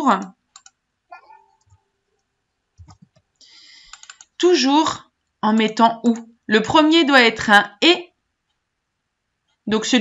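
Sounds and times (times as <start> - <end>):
person speaking: 0.0 - 0.3, 4.0 - 8.1
computer mouse clicks: 0.2 - 0.8, 1.5 - 4.4, 5.5 - 6.3.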